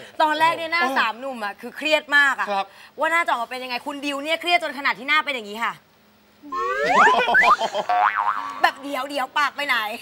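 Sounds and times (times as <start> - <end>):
short rising chirps: 6.5 - 7.6
cartoon boing tone gliding upward: 6.5 - 8.6.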